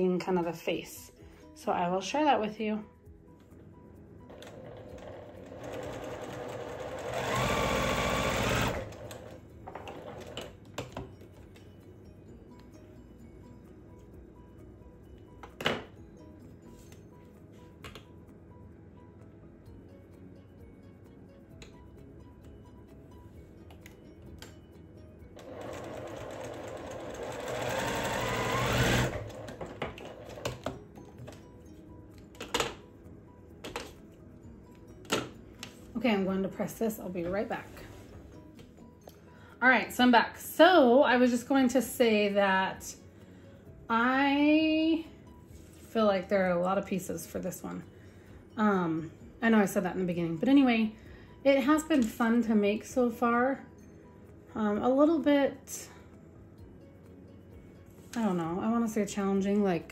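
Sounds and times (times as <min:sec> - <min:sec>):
electric sewing machine stitching: 0:04.3 - 0:10.6, 0:25.4 - 0:30.6.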